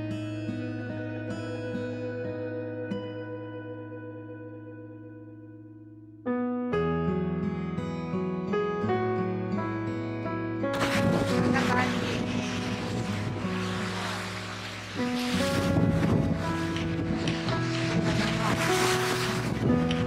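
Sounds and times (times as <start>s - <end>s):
gentle piano music: 0.0s - 20.0s
surf washing on rocks: 10.8s - 20.0s
wind buffeting microphone: 10.8s - 20.0s.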